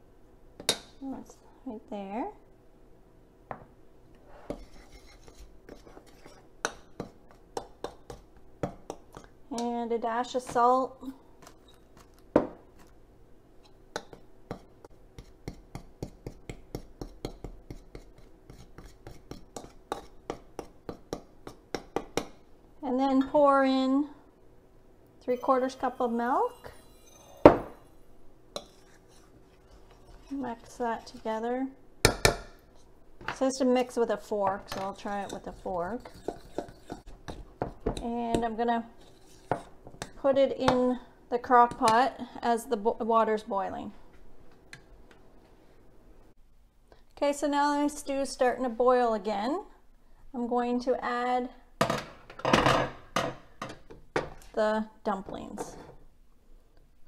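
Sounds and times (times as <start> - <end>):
metal spoon scraping ceramic bowl: 4.4 - 6.4, 25.4 - 27.9, 28.6 - 31.4, 34.8 - 37.4
glass cup knocking on counter: 27.4 - 27.8.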